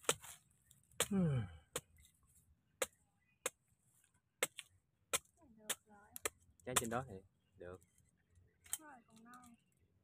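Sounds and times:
machete chopping coconut husk: 0.0s - 2.1s, 2.8s - 3.6s, 4.4s - 7.0s.

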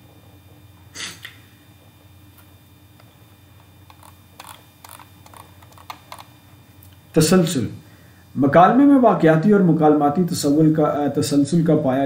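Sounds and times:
faint steady hum: 0.0s - 12.0s
computer clicks and taps: 3.9s - 6.3s.

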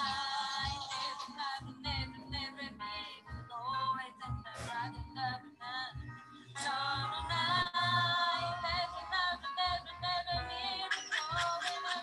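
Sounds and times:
song over video call audio: 0.0s - 12.0s.

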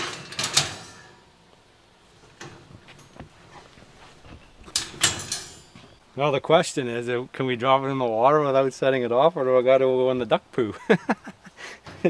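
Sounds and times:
metal cage trap rattling: 0.0s - 1.2s, 4.4s - 6.0s.

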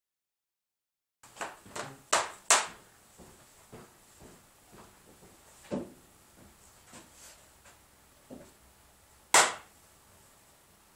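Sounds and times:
paddle slaps on pvc pipe: 9.4s - 9.7s.

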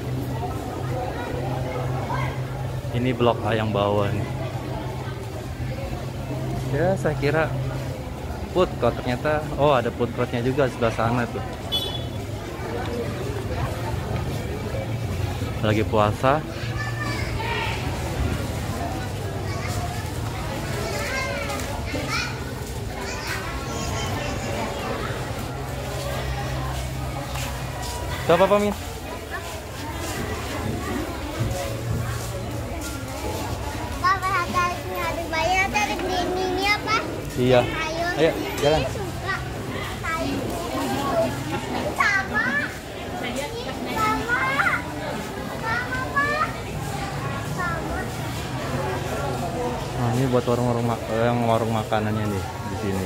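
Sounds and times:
murmur of chatter: 0.0s - 53.0s
children's voices calling out: 16.4s - 49.8s
children calling out: 16.6s - 18.2s, 19.3s - 26.8s.

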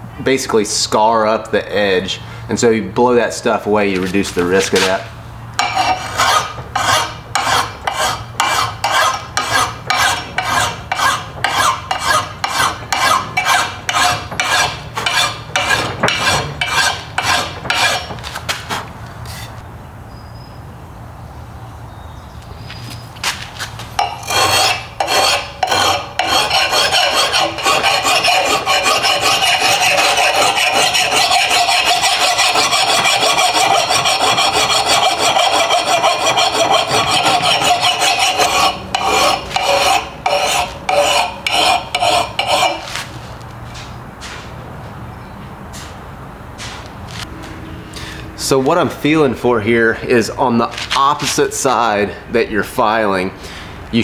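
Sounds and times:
file rasping on axe edge: 4.1s - 5.0s, 5.6s - 19.6s, 24.0s - 43.1s.

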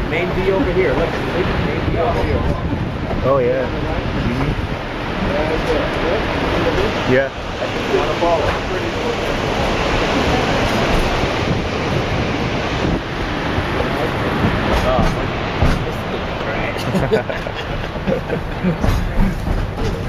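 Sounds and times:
train rolling along track: 0.0s - 20.0s
wind buffeting microphone: 0.0s - 20.0s.

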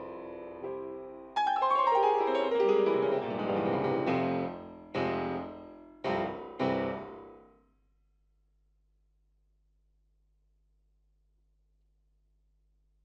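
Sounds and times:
grand piano playing: 0.0s - 7.4s.

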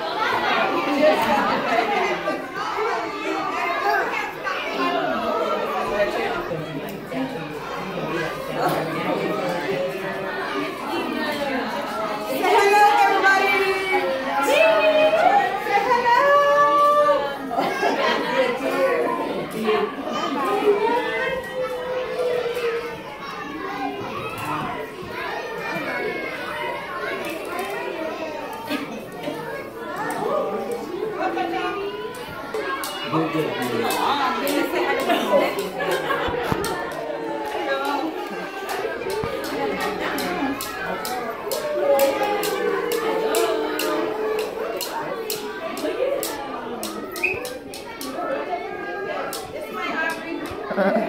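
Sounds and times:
chatter of adults and children: 0.0s - 51.0s
voices in a large room: 0.0s - 51.0s.

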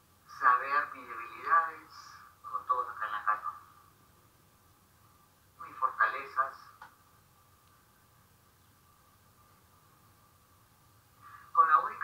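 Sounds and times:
faint steady hum: 0.0s - 12.0s
person speaking: 5.6s - 6.9s, 11.3s - 12.0s.

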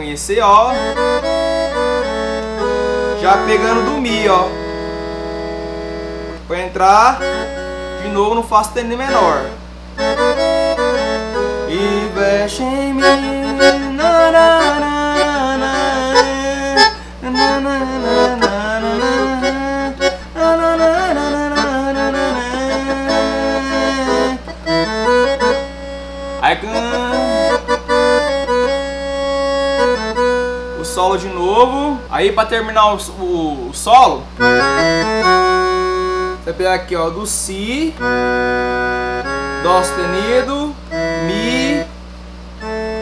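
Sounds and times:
accordion melody: 0.0s - 43.0s.

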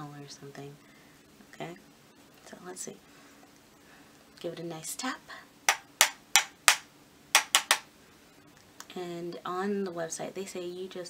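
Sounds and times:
brush tapping on powder compact: 5.7s - 6.8s, 7.4s - 7.8s.

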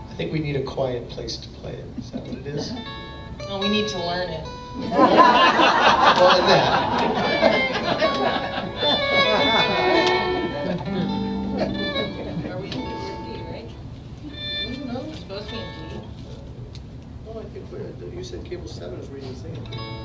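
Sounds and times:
held fiddle notes: 2.0s - 16.6s, 19.2s - 20.0s
acoustic guitar strummed: 2.3s - 16.2s, 19.6s - 20.0s.

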